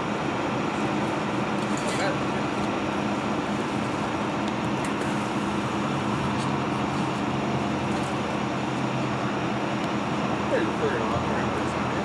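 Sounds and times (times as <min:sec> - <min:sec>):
idling motor hum: 0:00.0 - 0:12.0.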